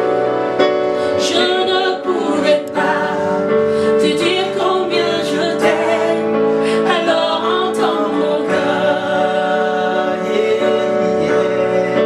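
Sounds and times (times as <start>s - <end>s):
electronic keyboard chords: 0.0s - 12.0s.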